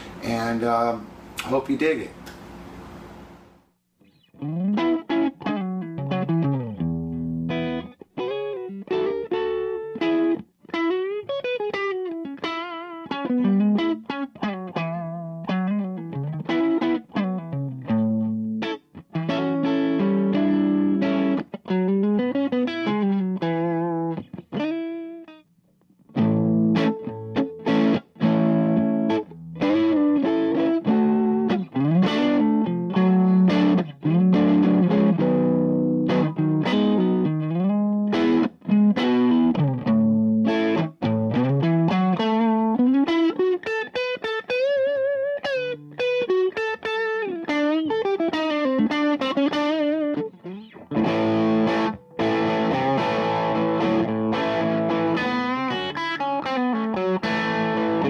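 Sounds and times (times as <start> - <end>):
clean electric guitar: 4.0 - 58.0.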